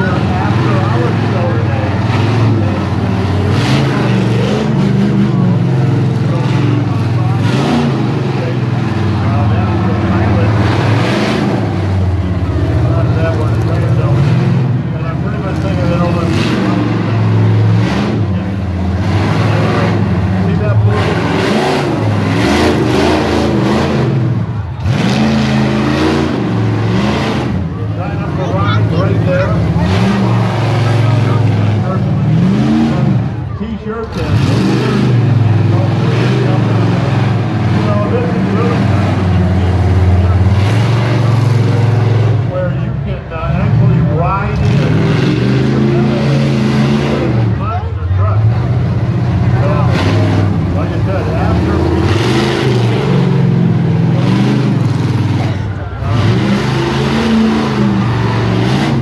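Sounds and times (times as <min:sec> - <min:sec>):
people talking: 0:00.0 - 0:26.2, 0:26.9 - 0:59.0
truck engine revving: 0:00.0 - 0:59.0.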